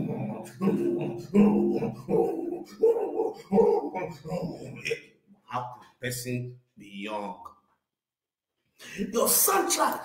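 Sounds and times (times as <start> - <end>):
man grunting rhythmically: 0.0 - 5.2.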